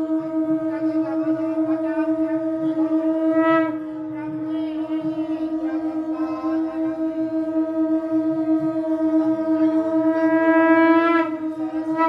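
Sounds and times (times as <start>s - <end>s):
conch shell blown: 0.0s - 12.0s.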